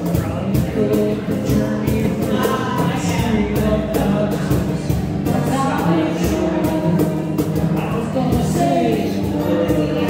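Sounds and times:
cajon beat: 0:00.0 - 0:10.0
person singing: 0:00.0 - 0:10.0
strummed acoustic guitar: 0:00.0 - 0:10.0.

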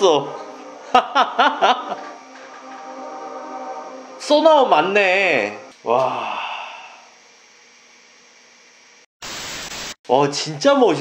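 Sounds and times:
burst of static hiss: 0:09.2 - 0:10.0.

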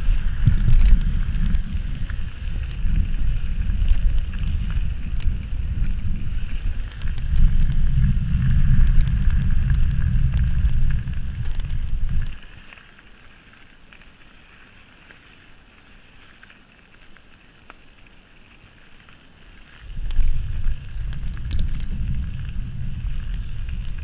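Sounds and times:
wind buffeting microphone: 0:00.0 - 0:12.6, 0:19.8 - 0:24.0
bike ticks and rattles: 0:00.0 - 0:24.0.

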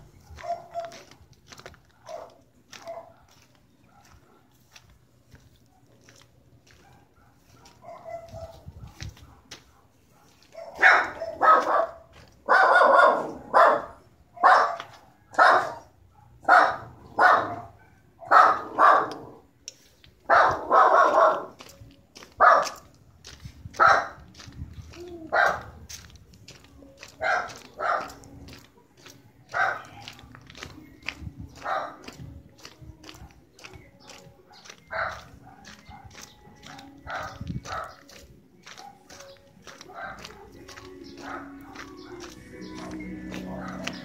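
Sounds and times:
dog barking: 0:00.2 - 0:01.2, 0:01.8 - 0:04.6, 0:05.6 - 0:19.5, 0:20.2 - 0:21.6, 0:22.4 - 0:22.9, 0:23.8 - 0:24.3, 0:25.3 - 0:25.9, 0:27.2 - 0:28.4, 0:29.5 - 0:30.2, 0:31.6 - 0:32.1, 0:34.5 - 0:42.4, 0:43.4 - 0:44.0.

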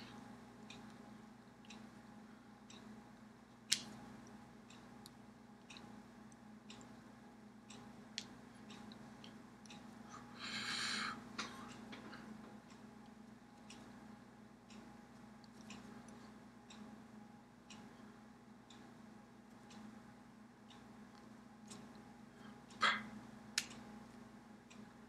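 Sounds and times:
low room hum: 0:00.0 - 0:25.0
clock ticking: 0:04.2 - 0:10.0, 0:11.4 - 0:15.0, 0:15.6 - 0:17.0.

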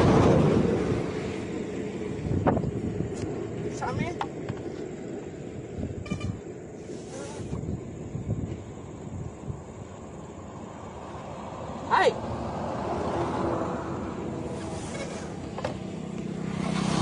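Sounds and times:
low outdoor rumble: 0:00.0 - 0:17.0
man shouting: 0:11.9 - 0:12.2.

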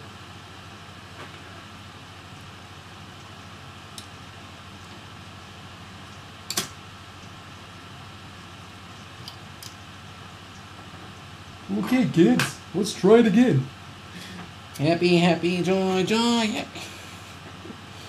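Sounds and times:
steady room hum: 0:00.0 - 0:18.0
light clicks of small parts: 0:03.9 - 0:04.2, 0:06.1 - 0:07.4, 0:09.0 - 0:09.8.

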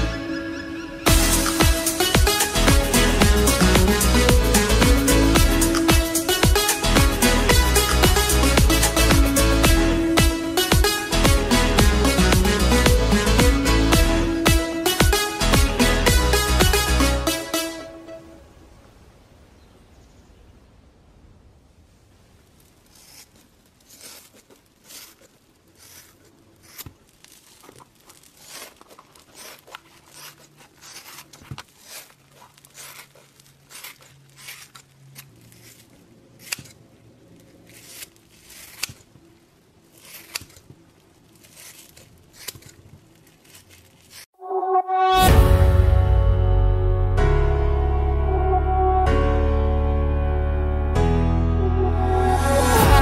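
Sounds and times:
gloved fingers crinkling on skin: 0:22.7 - 0:39.2.

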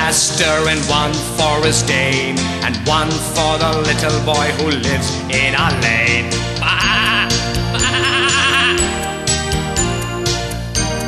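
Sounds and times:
nursery rhyme backing music: 0:00.0 - 0:11.0
sheep bleating: 0:06.6 - 0:08.8.

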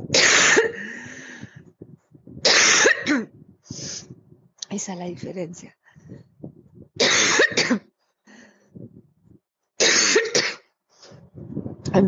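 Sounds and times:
person coughing: 0:00.1 - 0:01.0, 0:02.4 - 0:03.4, 0:06.9 - 0:07.9, 0:09.8 - 0:10.7.

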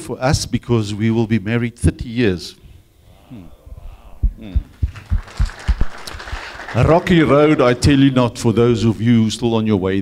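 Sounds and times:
dull low thumps: 0:03.2 - 0:06.0
audience clapping: 0:04.6 - 0:07.6.

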